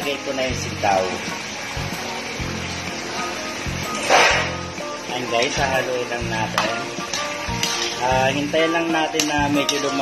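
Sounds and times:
background music: 0:00.0 - 0:10.0
beans sliding off metal tray: 0:03.9 - 0:04.6.

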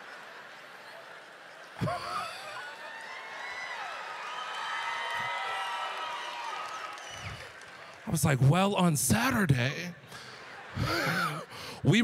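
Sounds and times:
audience laughing: 0:00.0 - 0:02.9, 0:10.0 - 0:11.6
whoops: 0:01.8 - 0:07.6.

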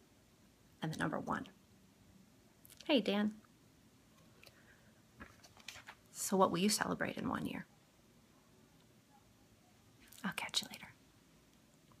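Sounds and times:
woman whispering: 0:10.0 - 0:11.0.

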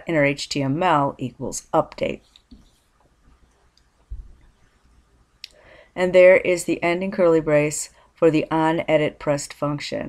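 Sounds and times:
soft low thump: 0:04.1 - 0:04.4.

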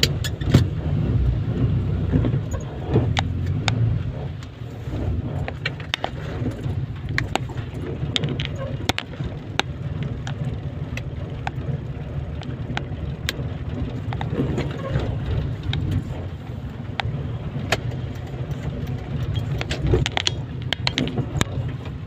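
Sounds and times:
car engine and road rumble: 0:00.0 - 0:22.0
raindrops ticking on windshield: 0:00.0 - 0:22.0.

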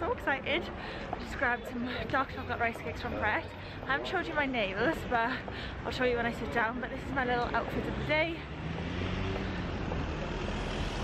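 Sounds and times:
city street traffic: 0:00.0 - 0:11.0
vehicle engine humming: 0:00.0 - 0:11.0.

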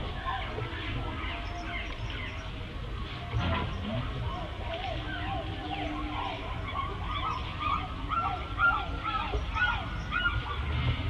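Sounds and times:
peafowl calling: 0:03.2 - 0:11.0.

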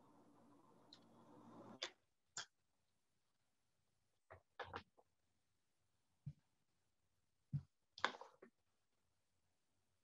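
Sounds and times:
faint background hum: 0:00.0 - 0:03.0.

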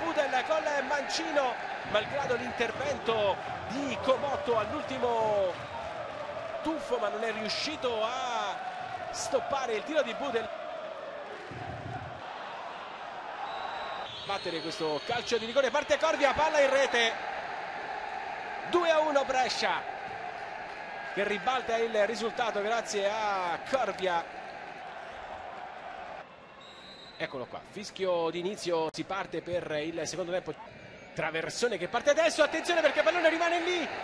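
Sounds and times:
stadium crowd chanting: 0:00.0 - 0:14.1, 0:17.1 - 0:26.2, 0:32.3 - 0:34.0
referee's whistle: 0:13.4 - 0:15.5, 0:26.5 - 0:27.5.

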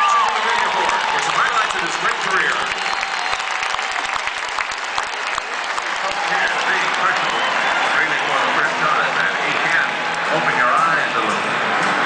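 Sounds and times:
voices and shouts: 0:00.0 - 0:03.3, 0:06.0 - 0:12.0
audience applauding: 0:00.0 - 0:12.0.

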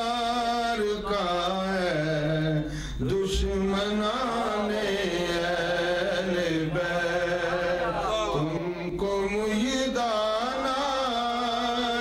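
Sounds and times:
man chanting unaccompanied: 0:00.0 - 0:12.0.

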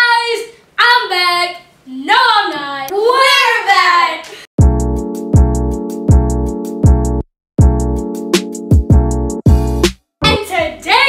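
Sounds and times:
deep bass beat: 0:04.6 - 0:08.1, 0:08.7 - 0:10.8.

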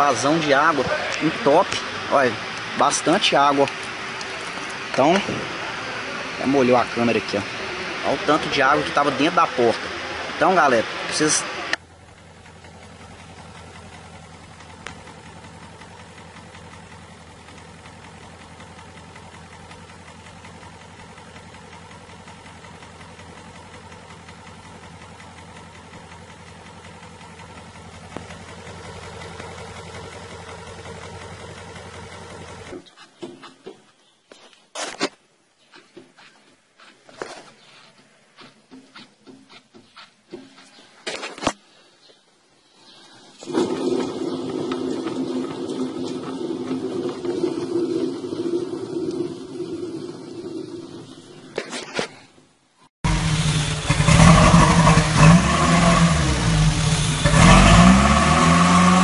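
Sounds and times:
engine idling: 0:00.0 - 0:33.0, 0:43.0 - 0:59.0.

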